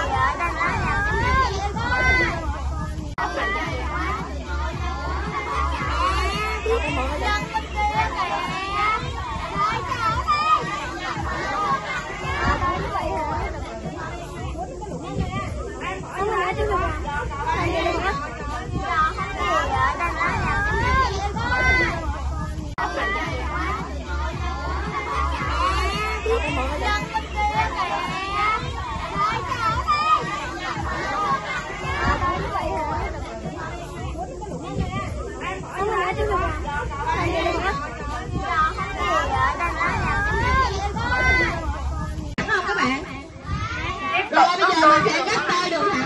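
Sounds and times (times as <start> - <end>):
children talking: 0.0 - 46.0.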